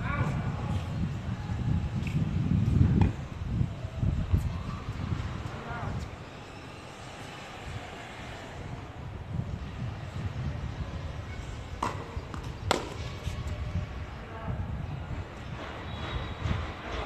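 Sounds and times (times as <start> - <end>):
tennis ball bouncing on hard court: 11.8 - 13.2
tennis ball hit by racket: 11.8 - 13.3.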